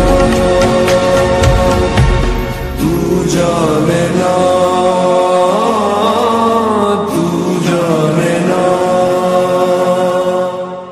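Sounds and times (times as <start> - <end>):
slowed reverb-heavy lofi song: 0.0 - 10.9.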